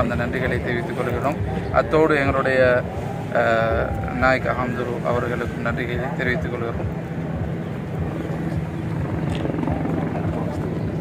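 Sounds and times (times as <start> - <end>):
helicopter engine and rotor drone: 0.0 - 11.0.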